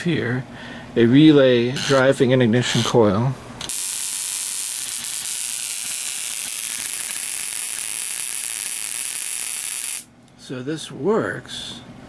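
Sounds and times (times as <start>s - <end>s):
high-voltage sparks crackling: 3.7s - 10.1s.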